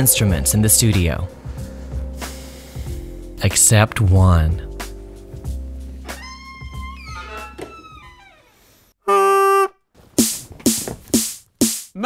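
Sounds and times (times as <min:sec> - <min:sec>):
faint wavering music: 0:00.0 - 0:03.8
bagpipe note: 0:09.1 - 0:09.8.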